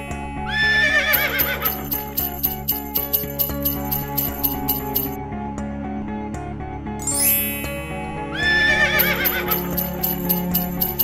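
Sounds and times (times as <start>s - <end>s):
horse whinny: 0.5s - 1.8s, 8.4s - 9.6s.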